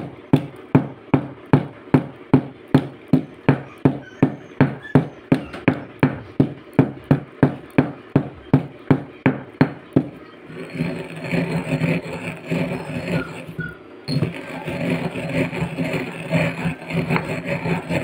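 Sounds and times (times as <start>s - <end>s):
pestle grinding shell in mortar: 0.0s - 18.0s
stone pestle pounding eggshells: 0.0s - 18.0s.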